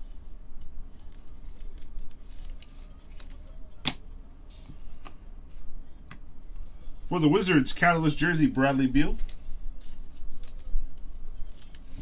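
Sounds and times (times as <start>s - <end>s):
cards and plastic holders handled: 0.5s - 5.2s, 9.1s - 12.0s.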